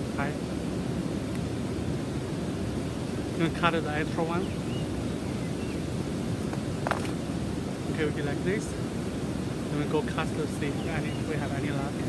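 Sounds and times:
river water rushing: 0.0s - 12.0s
wind on microphone: 0.0s - 12.0s.

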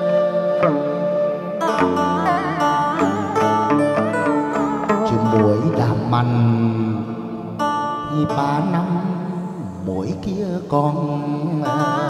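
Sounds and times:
plucked strings with bending notes: 0.4s - 12.0s.

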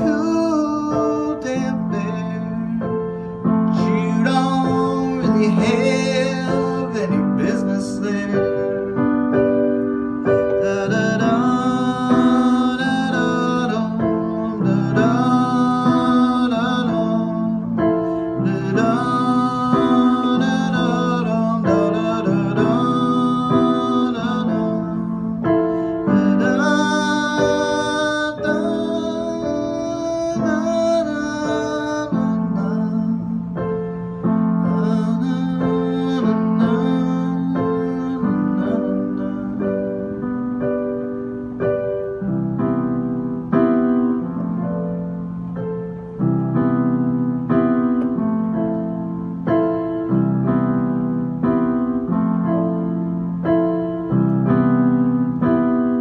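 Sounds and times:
keyboard playing piano chords: 0.0s - 56.0s.

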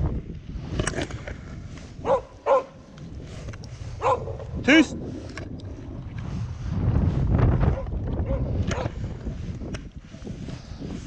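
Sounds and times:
wind noise on microphone: 0.0s - 11.0s
hound barking: 2.0s - 2.8s, 4.0s - 4.5s, 7.7s - 8.9s.

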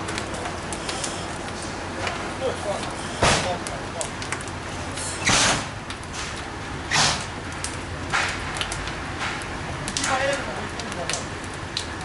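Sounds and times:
fire roaring with crackles: 0.0s - 12.0s.

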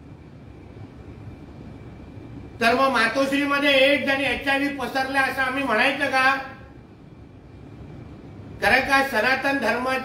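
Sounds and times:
faint high-pitched whine: 0.0s - 10.0s
low steady rumble: 0.0s - 10.0s.

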